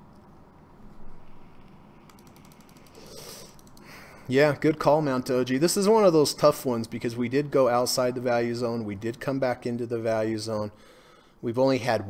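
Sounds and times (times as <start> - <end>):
mouse scroll wheel clicking: 2.0 - 3.9.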